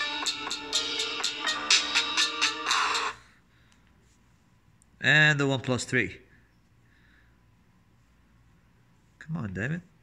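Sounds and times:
electronic music from phone speaker: 0.0s - 3.3s.

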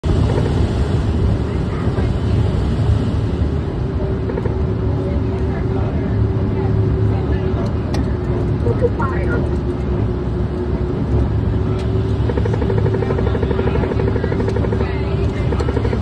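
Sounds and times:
low rumble of airflow and engines: 0.0s - 16.0s
thin steady hum: 0.0s - 16.0s.

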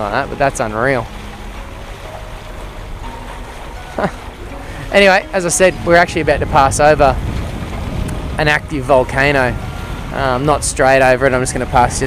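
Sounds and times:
boat motor rumble: 0.0s - 12.0s
water: 0.0s - 12.0s
wind on microphone: 1.0s - 12.0s.

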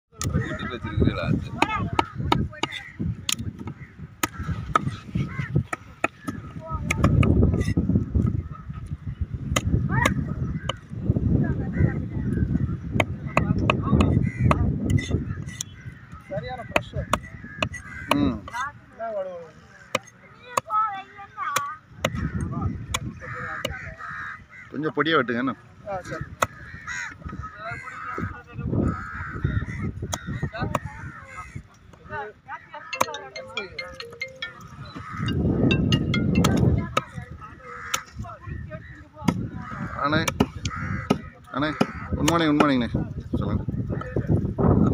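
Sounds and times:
cleaver chopping on wood: 1.6s - 4.9s
crows cawing: 13.4s - 18.6s, 21.6s - 24.9s, 25.9s - 31.7s, 34.8s - 35.7s, 37.5s - 42.7s.

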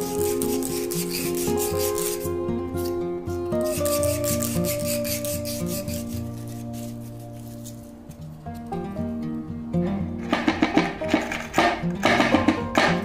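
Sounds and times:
sandpaper rubbing metal tube: 0.0s - 8.2s
background music: 0.0s - 13.0s.

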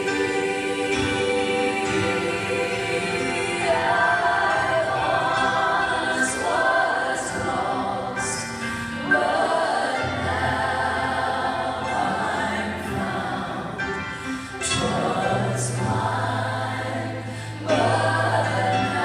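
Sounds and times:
women singing gospel hymn: 0.0s - 14.0s, 14.6s - 19.0s.

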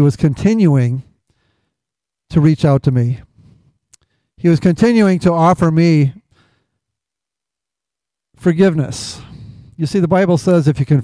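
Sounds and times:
man speaking: 0.0s - 1.1s, 2.3s - 3.3s, 4.4s - 6.2s, 8.4s - 11.0s
soft breath: 1.3s - 1.8s, 3.3s - 4.4s, 6.3s - 6.8s, 9.2s - 9.8s.

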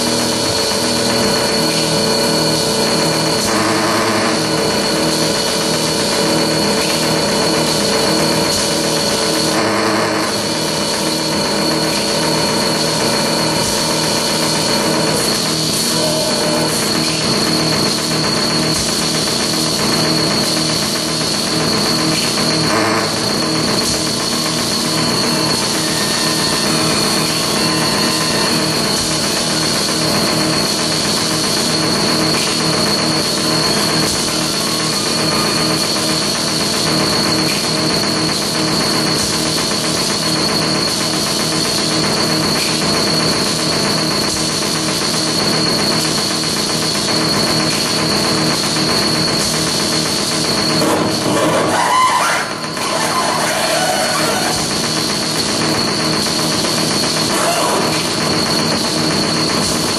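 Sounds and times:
harsh electronic noise: 0.0s - 59.9s
high-pitched whine: 0.0s - 59.9s.

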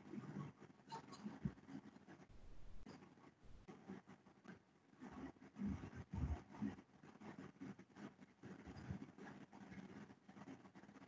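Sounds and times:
faint scratching and small clicks: 0.0s - 11.0s.

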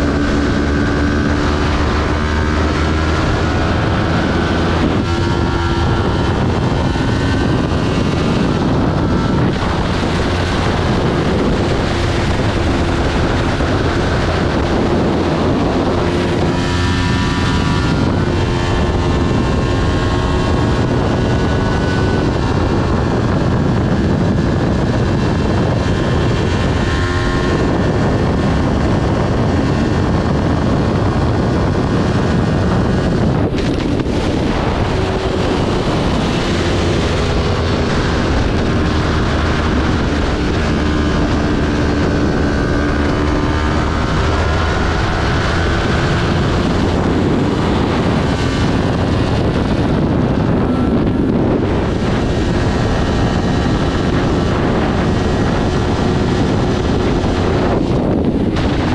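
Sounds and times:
motorcycle engine revving: 0.0s - 58.9s
wind noise: 0.0s - 58.9s.

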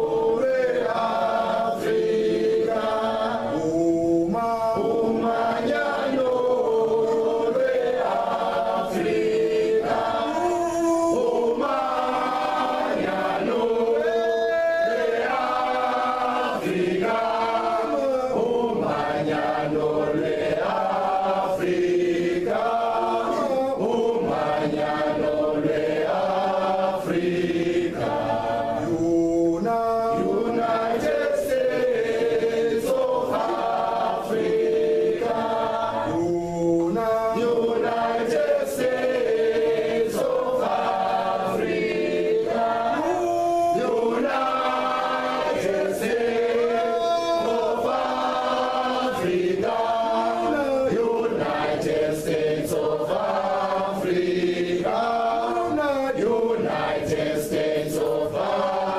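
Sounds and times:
group singing unaccompanied: 0.0s - 58.9s.

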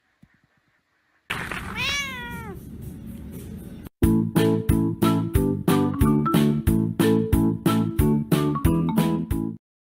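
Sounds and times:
cat meowing: 1.6s - 2.6s.

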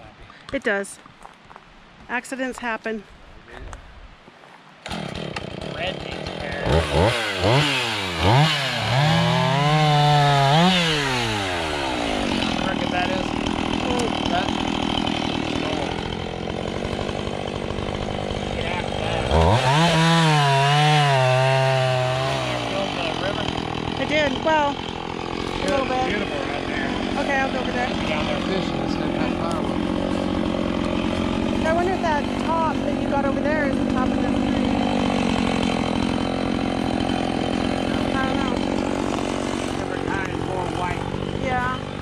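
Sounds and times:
chainsaw cutting a log: 4.8s - 42.0s.

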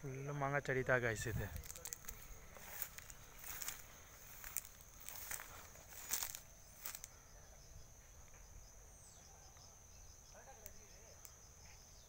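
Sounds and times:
high-pitched insect drone: 0.0s - 12.0s
footsteps on dry leaves: 1.2s - 7.1s.

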